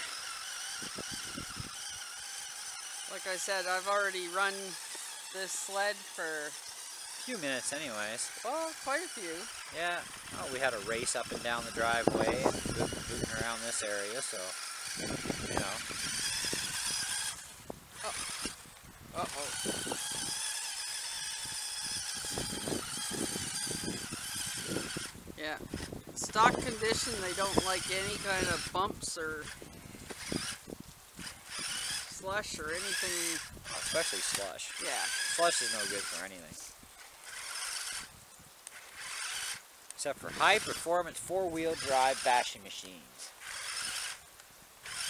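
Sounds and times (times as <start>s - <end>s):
scattered ticks: 0.0s - 15.0s
high-pitched electric motor whine: 0.0s - 44.2s
track hissing on snow: 0.0s - 45.0s.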